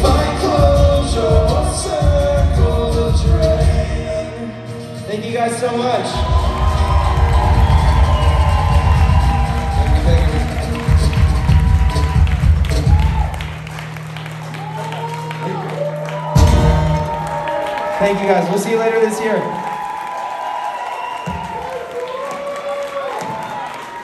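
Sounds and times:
acoustic band playing: 0.0 - 19.2
audience cheering and whooping: 6.0 - 24.0.

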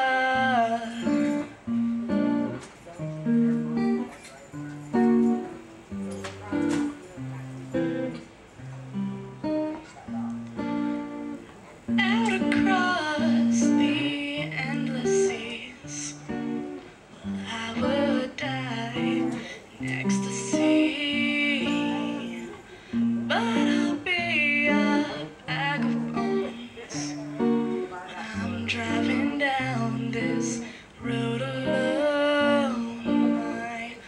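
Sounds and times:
woman singing: 0.0 - 1.7, 11.9 - 34.0
strummed acoustic guitar: 0.0 - 34.0.

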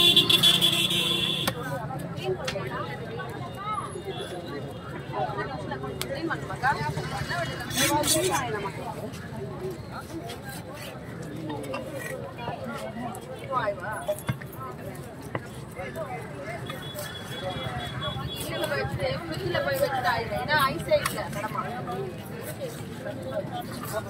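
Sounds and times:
people talking: 0.0 - 24.0.

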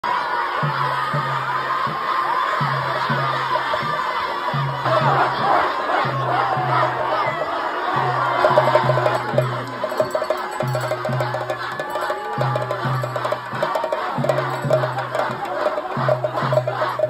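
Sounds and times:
crowd shouting and cheering: 0.0 - 17.0.

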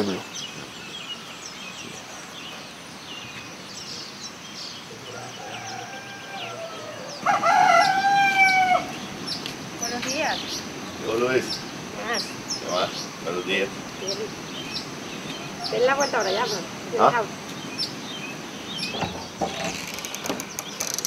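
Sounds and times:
small birds chirping: 0.0 - 21.0
rooster crowing: 5.1 - 9.0.

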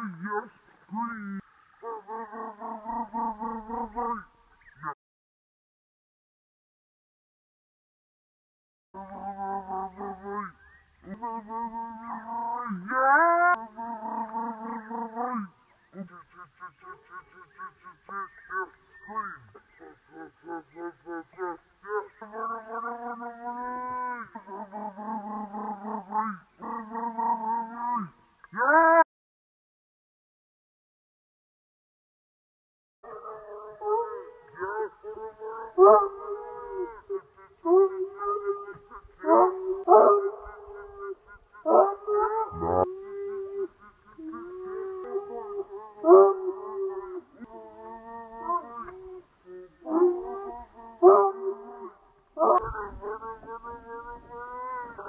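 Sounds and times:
dog yowling: 33.1 - 55.0
dog barking: 37.8 - 42.9, 51.0 - 53.6.

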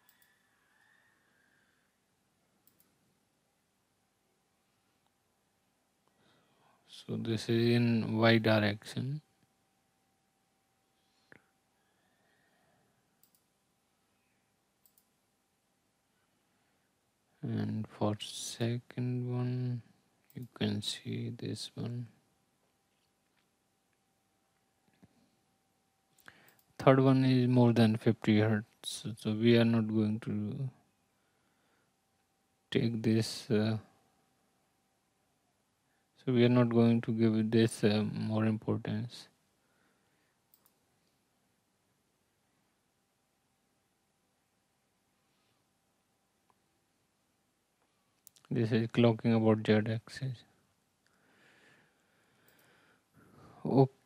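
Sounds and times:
computer mouse click: 0.0 - 0.4, 2.6 - 3.0, 13.2 - 13.5, 14.8 - 15.2.

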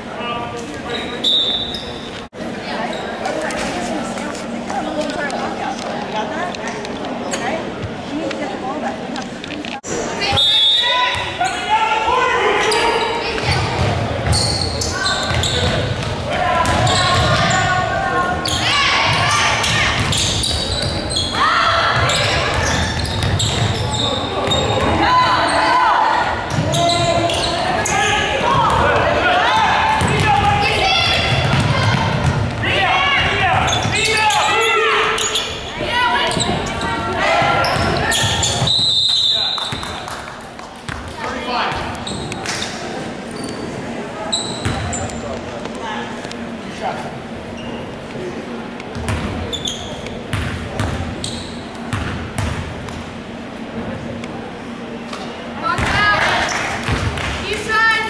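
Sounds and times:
players and spectators shouting: 10.2 - 13.8, 14.7 - 38.7
basketball bouncing on hardwood court: 31.2 - 32.6, 48.9 - 49.3, 50.3 - 51.0, 51.9 - 52.6.

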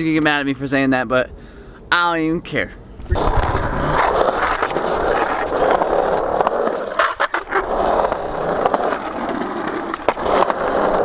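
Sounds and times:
skateboard wheels rolling on concrete: 3.0 - 11.0
skateboard clacks: 3.1 - 11.0.

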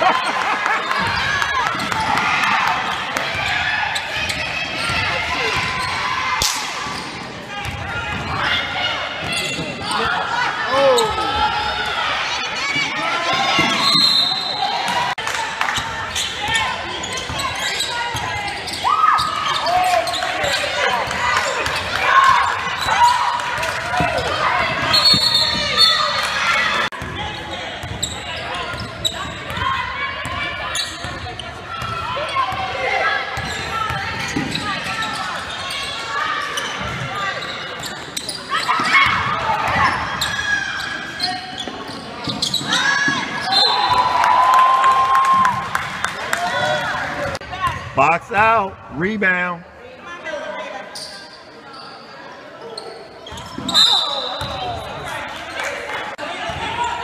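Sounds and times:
voices calling out in gym: 0.0 - 57.0.

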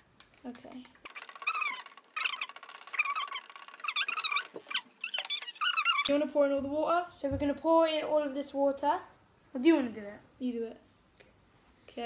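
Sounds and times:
sped-up squeaky voices: 1.0 - 6.1.

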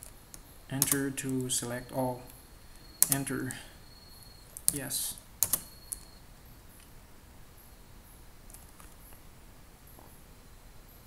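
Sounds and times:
computer keyboard keystrokes: 0.8 - 1.1, 3.0 - 3.3, 5.4 - 6.1.

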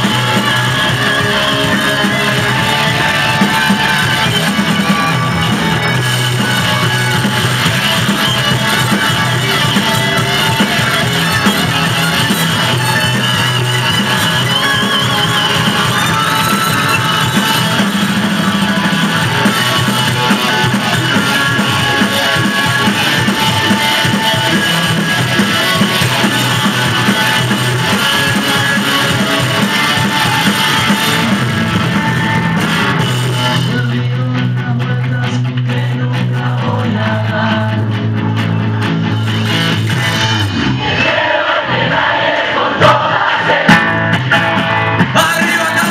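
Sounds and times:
lead guitar bending notes: 0.0 - 33.8
live rock band playing: 0.0 - 45.9.

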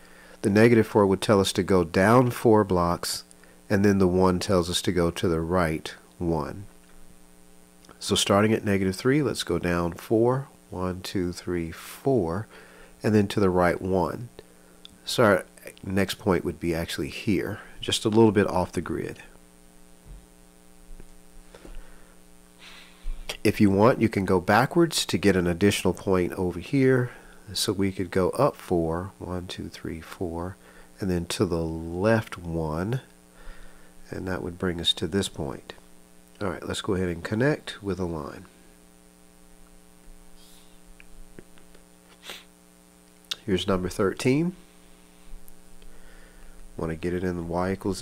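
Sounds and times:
electrical mains hum: 0.0 - 48.0
faint brief hiss: 42.0 - 42.6.

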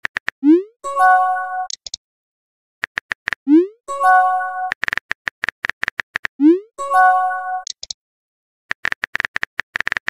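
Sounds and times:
electronic chime chord: 3.9 - 4.7, 6.8 - 7.6.

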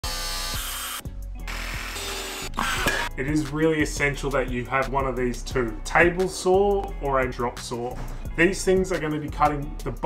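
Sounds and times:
angle grinder cutting metal: 0.0 - 3.1
background music with beat: 1.0 - 10.0.

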